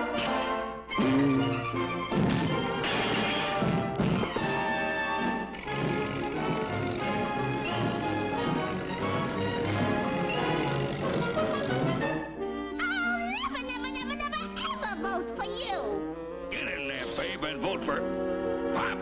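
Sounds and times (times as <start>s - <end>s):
orchestral cartoon music: 0.0s - 19.0s
crash sound effect: 2.8s - 4.3s.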